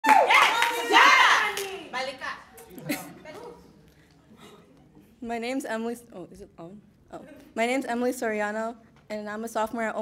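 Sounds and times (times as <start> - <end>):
audience clapping and cheering: 0.0 - 1.9.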